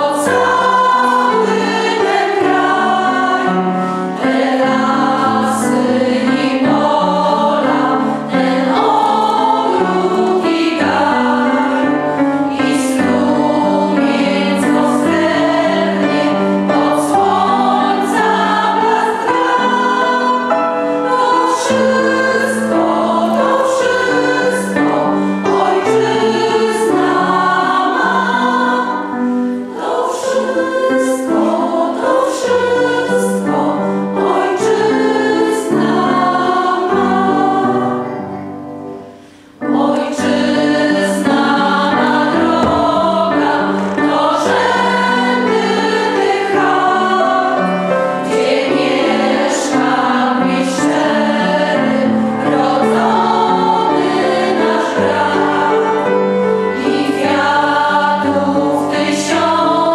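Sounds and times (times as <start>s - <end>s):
women singing in harmony: 0.0s - 38.3s, 39.5s - 59.9s
piano accompaniment: 0.0s - 59.9s.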